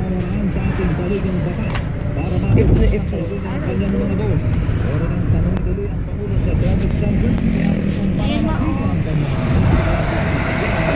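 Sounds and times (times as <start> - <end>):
car road and engine rumble: 0.0 - 10.9
voices talking: 0.0 - 10.9.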